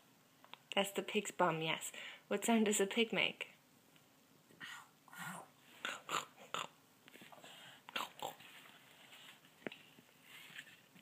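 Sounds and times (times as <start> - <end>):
breathy snorts imitating a pig: 4.6 - 6.8.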